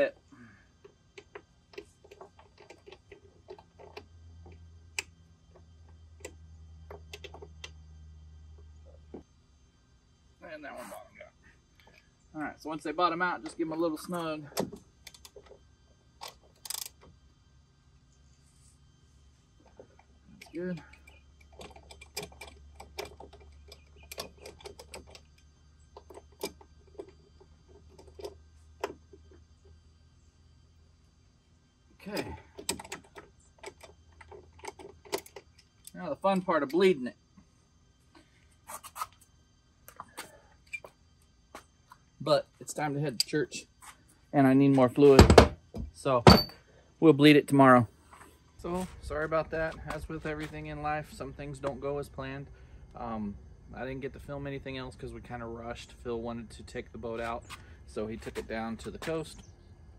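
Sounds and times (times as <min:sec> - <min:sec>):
low steady hum: 0:00.0 - 0:59.9.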